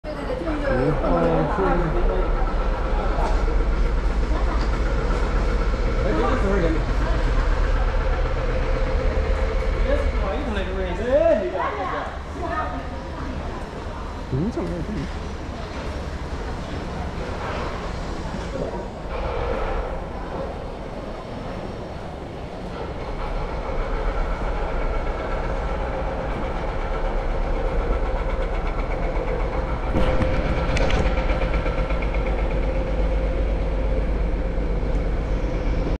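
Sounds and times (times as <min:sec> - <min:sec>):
low rumble with hum: 0:23.2 - 0:36.0
brief clatter: 0:29.9 - 0:32.4.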